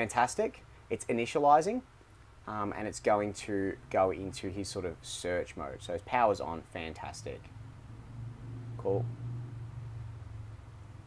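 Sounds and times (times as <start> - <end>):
faint hiss: 0.0 - 11.0
steady low hum: 0.0 - 11.0.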